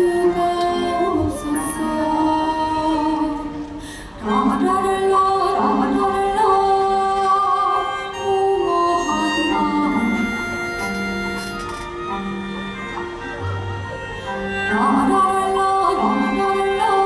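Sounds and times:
woman singing a slow ballad: 0:00.0 - 0:10.4
small ensemble with bowed strings: 0:07.2 - 0:17.0.

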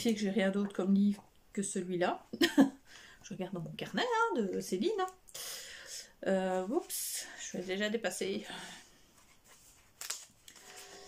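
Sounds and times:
notebook pages rustling: 0:09.0 - 0:11.0.

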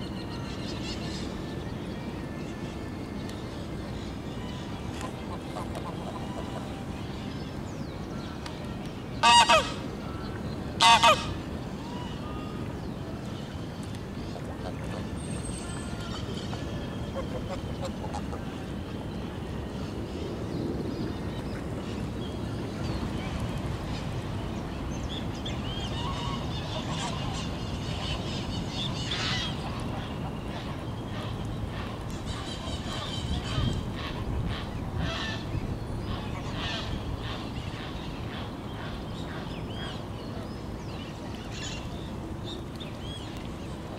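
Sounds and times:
geese honking: 0:09.2 - 0:09.8, 0:10.8 - 0:11.4.

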